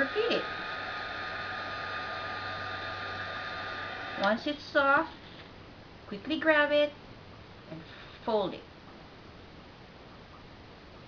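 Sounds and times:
heat gun blowing: 0.0 - 5.0.

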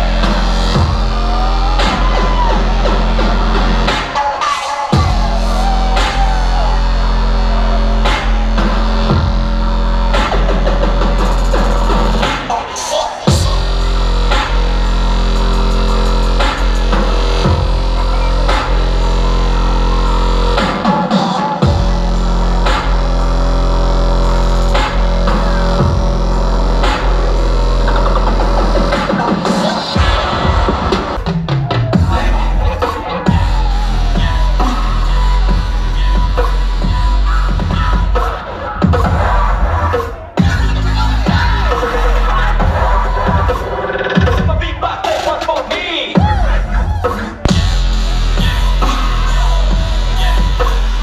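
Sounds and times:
bass-heavy electronic dance music: 0.0 - 51.0.

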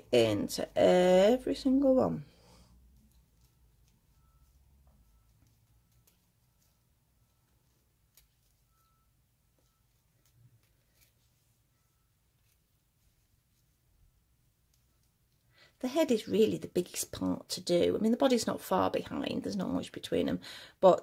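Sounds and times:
crochet hook ticking and rustling: 2.8 - 9.0.

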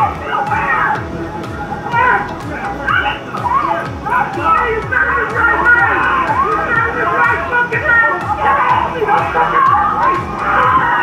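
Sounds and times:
background music with low beat: 0.0 - 11.0.

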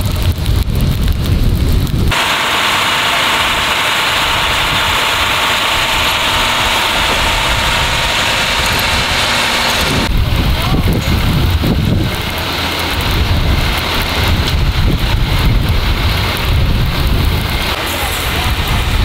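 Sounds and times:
wind rumbling on microphone: 0.0 - 2.2, 3.3 - 19.0
fire engine running: 0.0 - 19.0.

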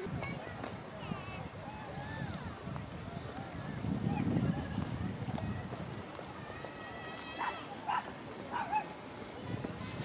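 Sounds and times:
crowd talking: 0.0 - 10.0
small dog barking: 7.4 - 8.9.

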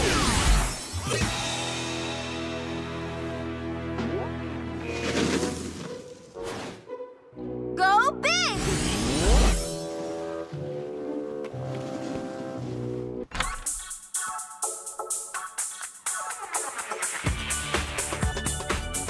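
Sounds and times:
cartoon background music: 0.0 - 19.0
upbeat electronic dance music: 14.0 - 19.0.

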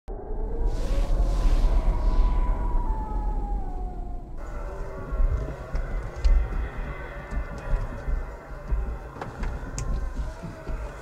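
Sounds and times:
film soundtrack with low drone: 0.1 - 11.0
heavy rumble with downward sliding tone: 0.1 - 11.0.

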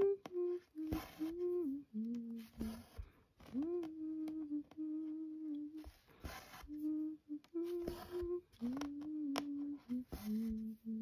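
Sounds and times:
person humming: 0.0 - 11.0.

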